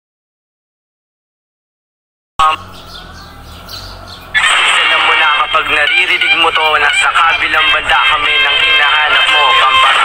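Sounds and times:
birds chirping faintly: 2.4 - 7.9.

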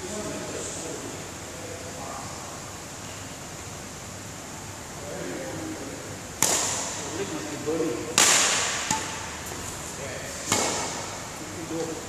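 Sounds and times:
racket striking shuttlecock: 6.4 - 7.0, 8.1 - 9.7, 10.4 - 11.3.

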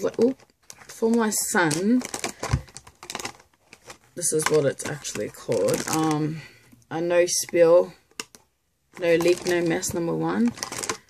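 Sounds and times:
card packaging clicks and taps: 2.2 - 6.0, 8.1 - 8.5.

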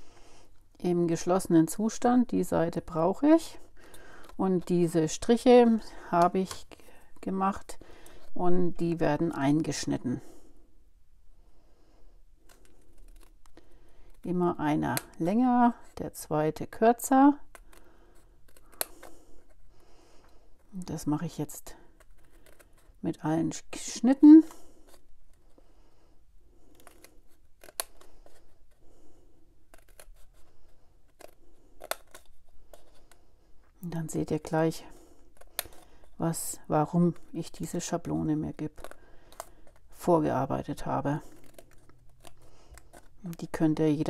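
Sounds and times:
scissors snipping cardstock: 17.4 - 19.6, 26.7 - 28.5, 29.7 - 30.5, 31.1 - 33.1, 35.3 - 36.2, 38.5 - 40.0, 40.8 - 43.6
scissors snipping card: 18.5 - 19.2, 26.7 - 28.4, 29.7 - 30.4, 31.1 - 33.1, 35.4 - 35.9.

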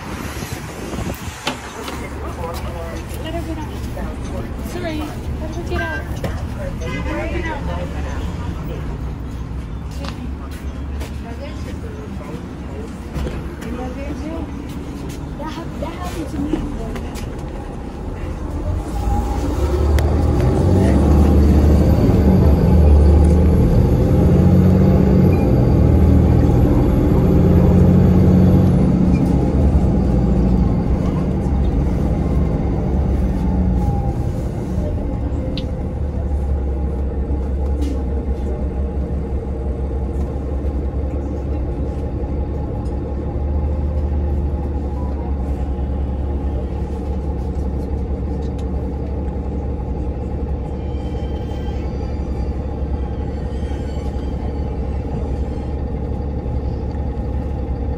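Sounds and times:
bus engine rumble: 0.0 - 57.9.

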